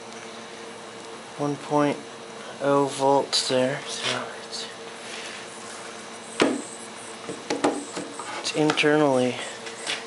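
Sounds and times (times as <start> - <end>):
battery cell venting hiss: 5.4 - 10.0.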